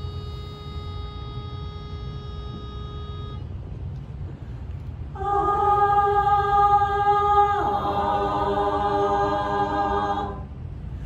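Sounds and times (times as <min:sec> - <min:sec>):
pitch pipe note: 0:00.0 - 0:03.6
low room rumble: 0:00.0 - 0:11.0.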